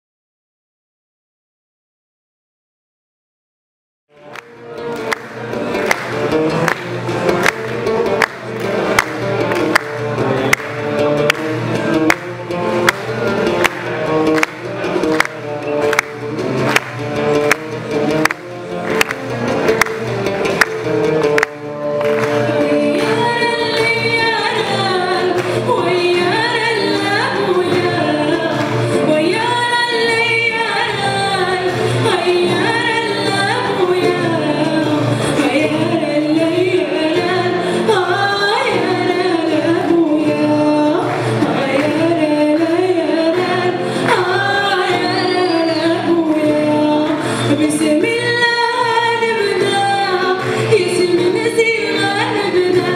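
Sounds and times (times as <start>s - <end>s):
live band playing: 4.1s - 52.9s
woman singing: 21.4s - 52.9s.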